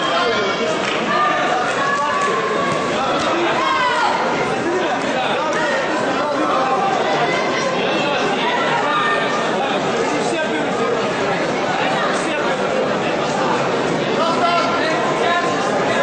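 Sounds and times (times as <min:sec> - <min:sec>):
crowd chatter in a hall: 0:00.0 - 0:16.0.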